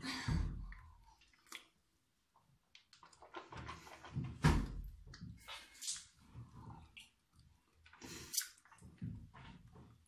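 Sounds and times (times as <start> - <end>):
child rinsing mouth and spitting: 5.4 - 9.0.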